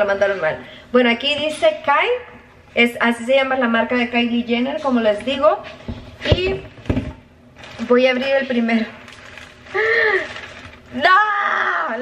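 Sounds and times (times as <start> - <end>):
woman exclaiming oh: 11.0 - 12.0.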